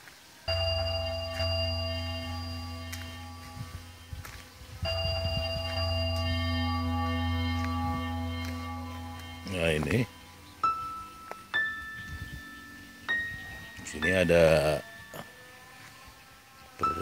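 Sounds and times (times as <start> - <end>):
held chords over low bass: 0.5 - 15.4.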